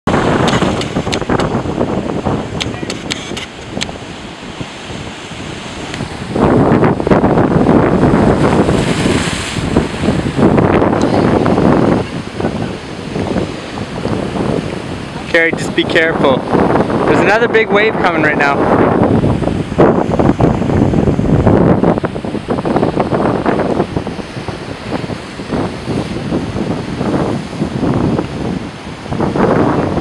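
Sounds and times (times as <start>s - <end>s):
wind buffeting microphone: 0.0s - 30.0s
ocean waves crashing on rocks: 0.1s - 30.0s.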